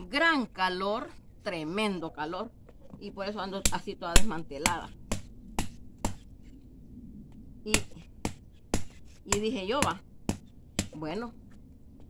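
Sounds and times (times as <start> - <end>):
hard knocks cracking seed pods: 7.8 - 11.0.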